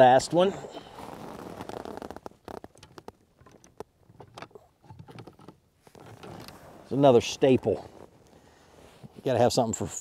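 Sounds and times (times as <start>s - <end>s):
fishing gear clicking and knocking: 1.5s - 6.6s.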